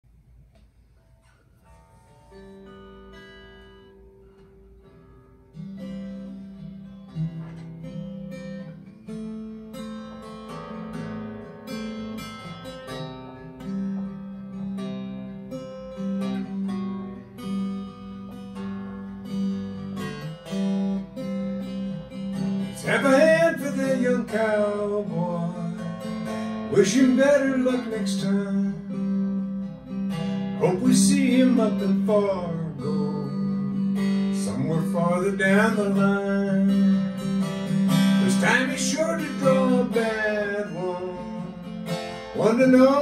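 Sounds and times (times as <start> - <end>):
acoustic guitar playing: 0.1 - 43.0.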